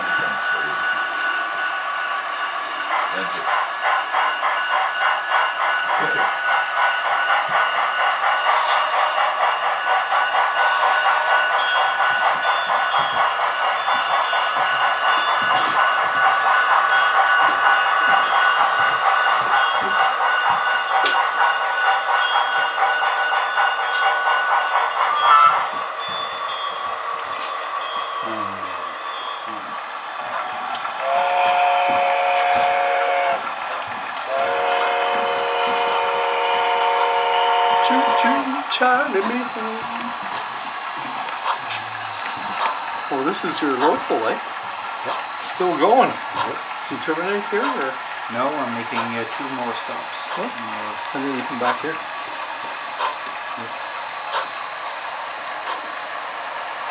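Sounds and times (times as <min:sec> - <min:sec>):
model locomotives running: 0:00.0 - 0:56.9
model locomotive horn blasts: 0:25.2 - 0:25.6, 0:31.0 - 0:33.5, 0:34.3 - 0:38.7.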